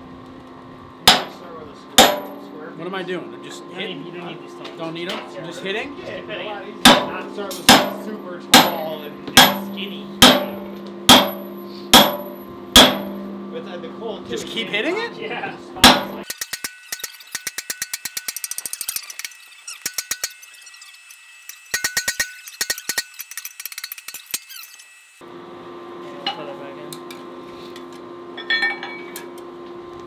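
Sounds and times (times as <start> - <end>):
hammer striking steel punch: 1.1 - 1.4, 2.0 - 2.6, 6.8 - 13.5, 15.8 - 16.3
low hum: 5.7 - 16.3.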